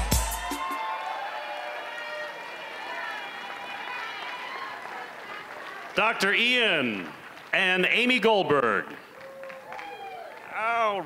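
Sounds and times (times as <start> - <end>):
audience applauding and cheering: 0.0 - 11.0.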